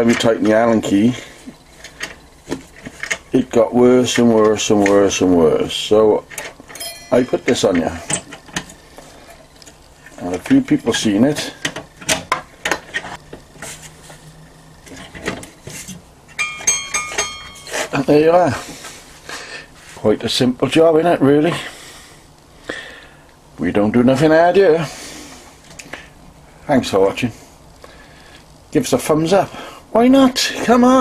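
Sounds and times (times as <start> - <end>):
bright metallic pings: 6.8 - 8.2, 16.3 - 18.2.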